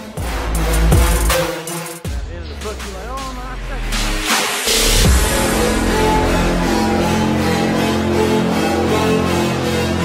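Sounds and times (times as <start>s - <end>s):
electronic music: 0.0s - 10.0s
pitch-bending vocal: 2.5s - 10.0s.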